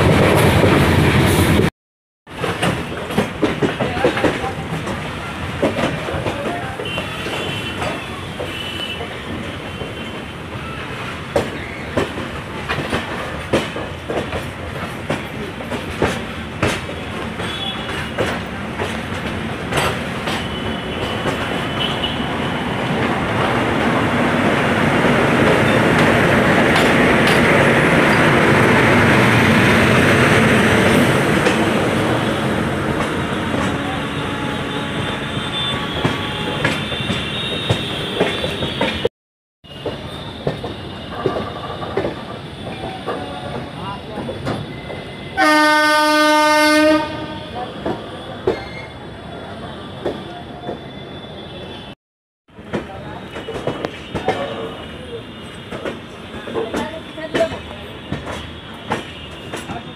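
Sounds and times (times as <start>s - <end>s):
train running noise: 0.0s - 1.7s, 2.3s - 39.1s, 39.7s - 59.9s
train horn: 33.6s - 39.1s, 45.2s - 47.9s.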